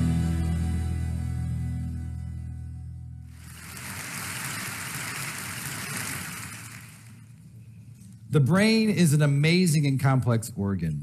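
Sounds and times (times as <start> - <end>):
guitar intro: 0.0 - 3.3
audience applause: 3.3 - 7.3.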